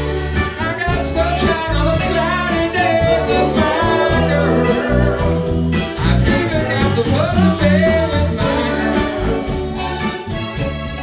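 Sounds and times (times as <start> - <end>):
person singing: 0.0 - 10.5
live soul band playing: 0.0 - 11.0.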